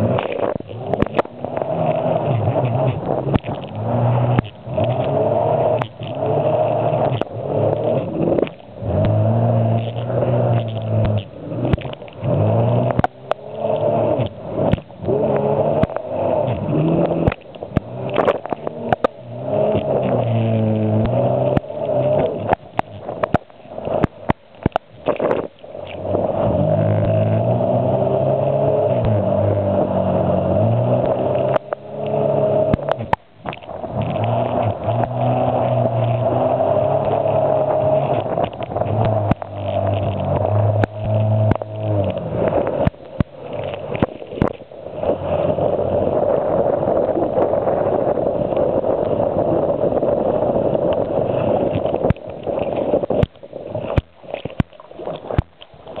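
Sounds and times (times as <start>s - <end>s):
water splashing: 0.0s - 56.0s
watercraft engine running: 0.0s - 56.0s.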